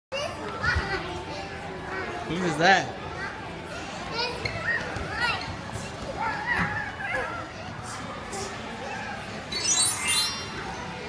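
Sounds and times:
children calling and chattering: 0.1 - 11.0.

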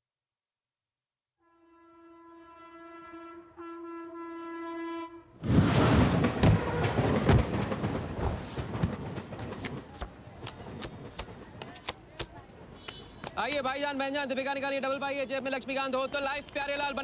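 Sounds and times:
steady horn-like tone: 1.4 - 5.4
dense rushing clatter: 5.4 - 11.0.

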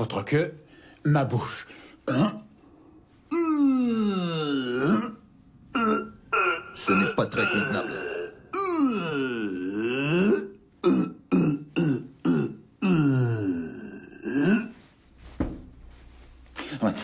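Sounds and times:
man making wordless vocal sounds: 3.3 - 10.6.

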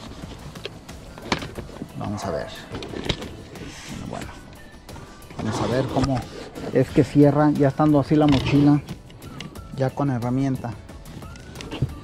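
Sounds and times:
tools and fabric shifting: 0.0 - 9.8, 11.0 - 12.0.

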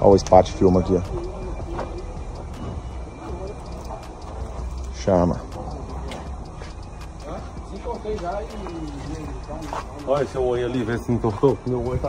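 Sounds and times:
faint distant voices: 0.0 - 12.0
steady low rumble: 0.0 - 12.0.

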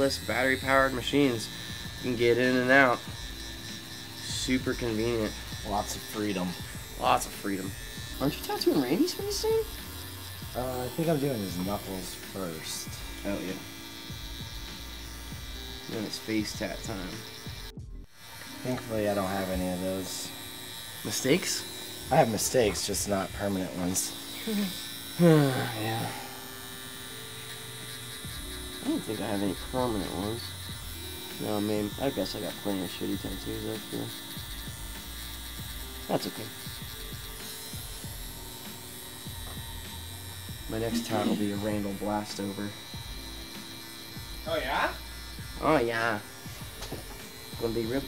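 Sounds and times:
background music: 0.0 - 48.0
tattoo machines buzzing: 0.0 - 48.0.

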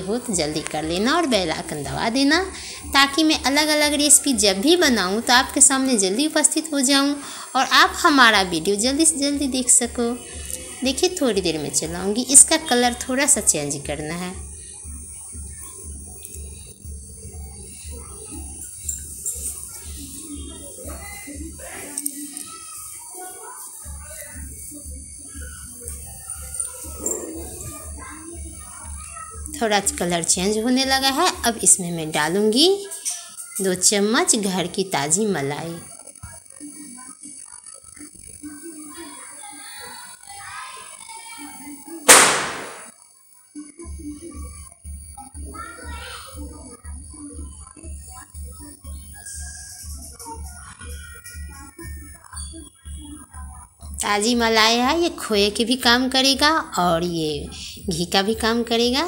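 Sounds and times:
faint background voices: 0.0 - 59.0
music with low beat: 8.9 - 21.8
firecracker bang: 42.1 - 42.9.

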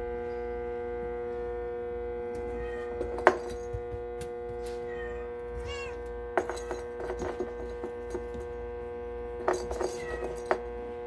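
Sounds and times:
background hum: 0.0 - 11.0
cat meowing: 2.5 - 3.0, 4.8 - 6.0.

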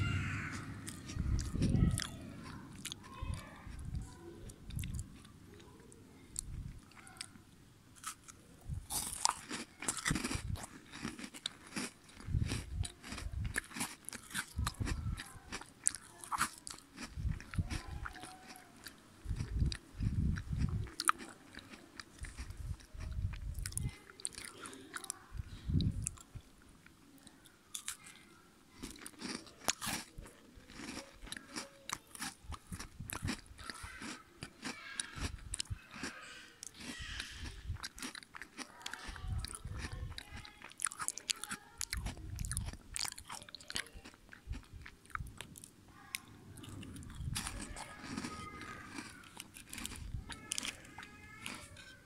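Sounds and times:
crunchy chewing of snack bar: 0.0 - 7.4, 8.0 - 52.0.

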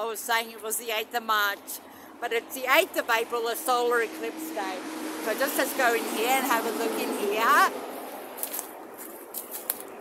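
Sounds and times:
motorway traffic hiss: 1.6 - 9.4
leaves brushing: 7.0 - 10.0
footsteps crunching: 7.8 - 10.0.

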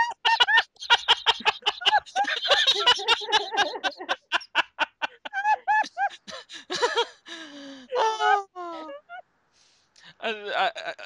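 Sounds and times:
person laughing: 0.0 - 7.3, 7.9 - 8.9.

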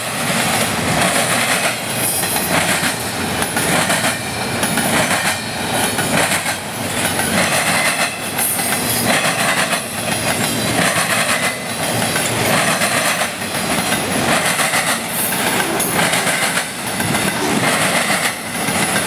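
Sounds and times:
train wheels clattering on rails: 0.0 - 19.0.

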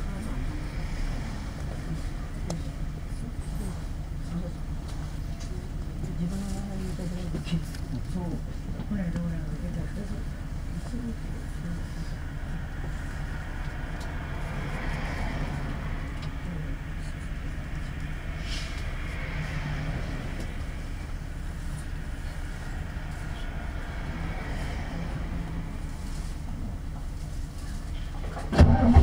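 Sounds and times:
bus diesel engine idling: 0.0 - 29.0.

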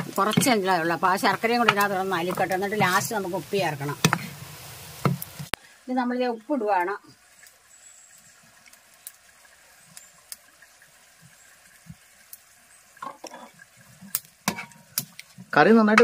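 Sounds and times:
curry bubbling in a pot: 0.0 - 15.7.

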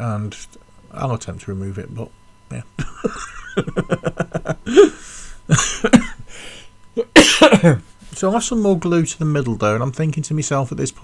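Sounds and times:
man chuckling: 2.8 - 6.4
man coughing: 2.8 - 6.4, 7.0 - 7.9.

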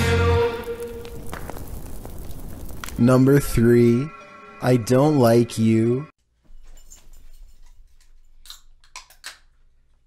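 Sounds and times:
fire crackling: 0.0 - 4.1.

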